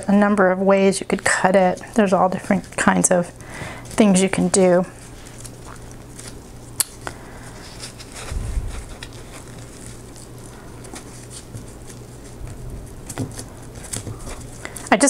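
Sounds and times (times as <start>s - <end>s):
paper crackling and rustling: 0.7s - 15.0s.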